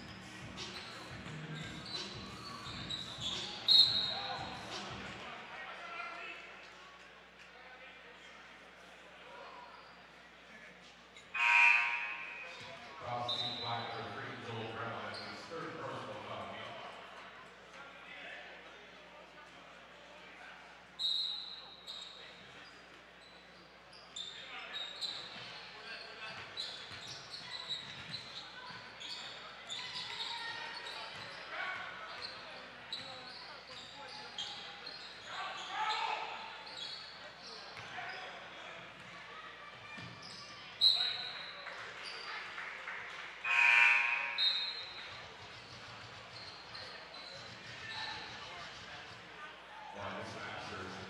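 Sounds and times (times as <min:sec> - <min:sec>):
sneakers squeaking on court: 0:00.0 - 0:05.2, 0:11.2 - 0:14.2, 0:14.8 - 0:15.5, 0:21.0 - 0:39.1, 0:39.7 - 0:42.3, 0:43.5 - 0:48.6
people calling out: 0:11.4 - 0:12.4, 0:43.4 - 0:44.8.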